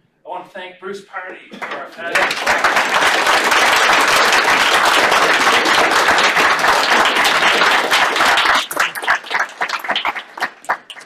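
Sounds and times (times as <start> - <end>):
audience applauding: 1.6 - 11.0.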